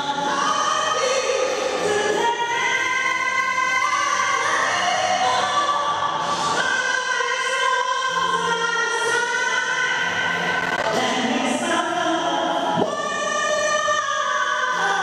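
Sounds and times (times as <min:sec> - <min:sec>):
woman singing: 0:00.0 - 0:15.0.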